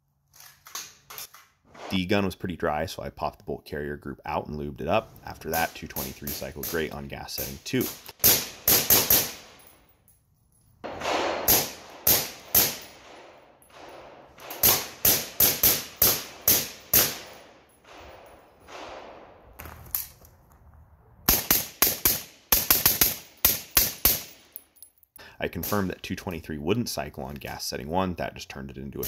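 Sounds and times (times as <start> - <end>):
suppressed rifle shots: 10.8 - 19.7.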